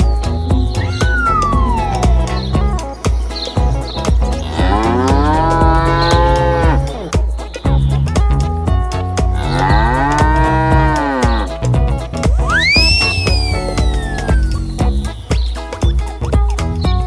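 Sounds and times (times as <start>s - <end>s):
background music with steady beat: 0.0s - 17.0s
cow mooing: 4.4s - 7.1s, 9.4s - 11.5s.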